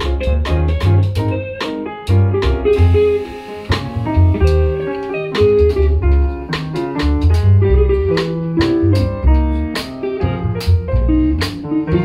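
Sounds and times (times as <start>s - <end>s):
drum kit with cymbal strokes: 0.0s - 12.0s
piano: 0.0s - 12.0s
plucked double bass: 0.0s - 12.0s.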